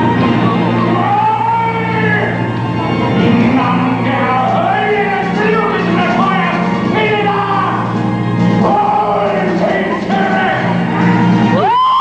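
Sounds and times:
orchestra playing: 0:00.0 - 0:11.7
choir singing: 0:08.5 - 0:11.5.

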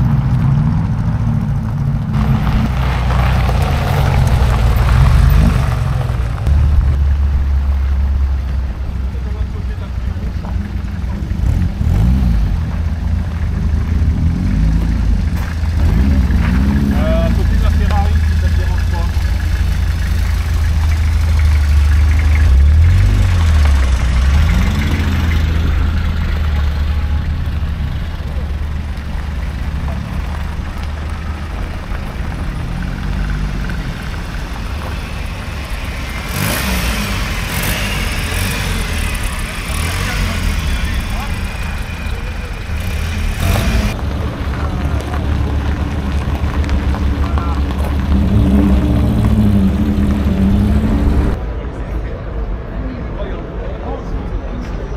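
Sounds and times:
car engines revving: 0:00.0 - 0:54.9
low engine rumble: 0:00.0 - 0:54.9.

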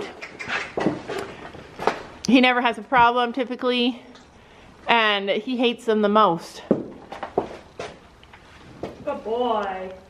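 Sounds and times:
horse hooves knocking and scuffing: 0:00.0 - 0:02.2, 0:06.6 - 0:09.2.

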